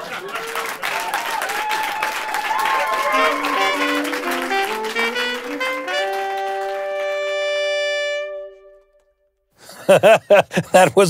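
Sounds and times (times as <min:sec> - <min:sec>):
audience applauding: 0:00.0 - 0:07.8
held musical tones: 0:02.5 - 0:09.2.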